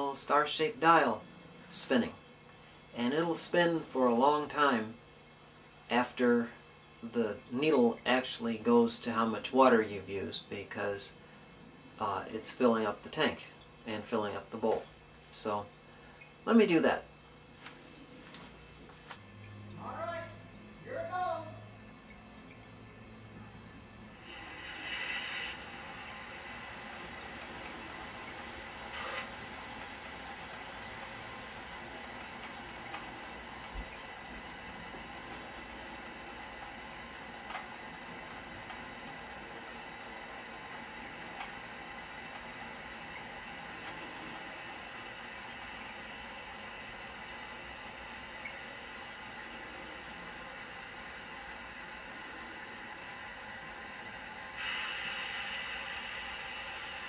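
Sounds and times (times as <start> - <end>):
water hissing through pipe: 21.4 - 57.0.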